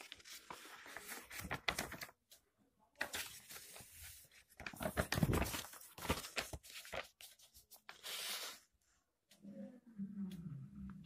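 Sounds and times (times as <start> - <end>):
paper rustling and crinkling: 0.0 - 2.4, 3.0 - 8.7.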